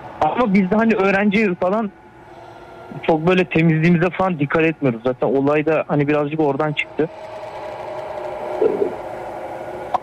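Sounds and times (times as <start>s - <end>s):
steady drone of held tones: 0.0s - 10.0s.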